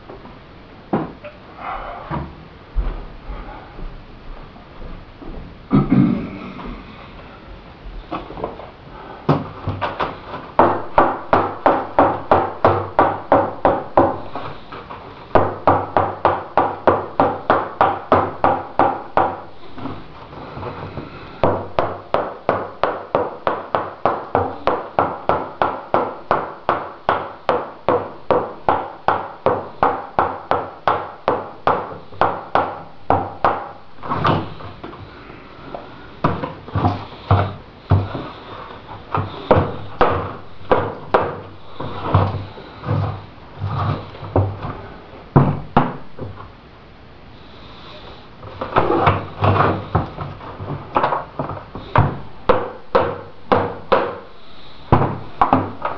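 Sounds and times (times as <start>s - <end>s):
rubber mallet rapping on a mold: 10.5s - 14.7s, 15.3s - 20.0s, 20.9s - 34.9s, 35.7s - 44.7s, 48.6s - 55.9s.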